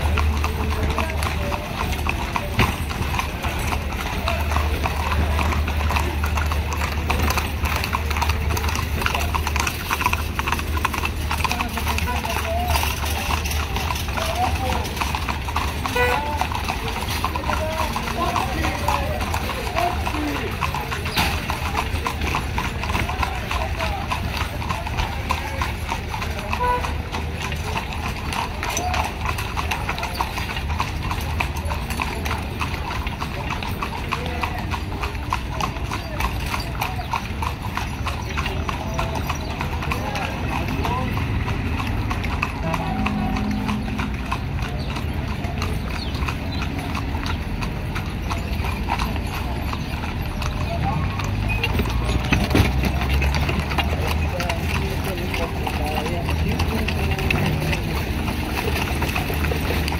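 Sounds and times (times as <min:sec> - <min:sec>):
hooves clip-clopping on pavement: 0:00.0 - 0:59.9.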